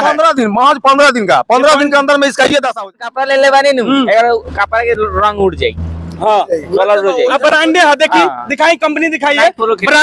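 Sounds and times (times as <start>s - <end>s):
men talking: 0.0s - 10.0s
vehicle engine rumble: 1.4s - 10.0s.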